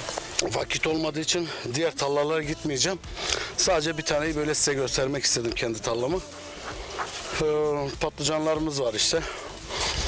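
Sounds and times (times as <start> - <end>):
man talking: 0.4 - 6.4, 7.0 - 9.5
rustling noise: 6.2 - 7.5, 9.6 - 10.0.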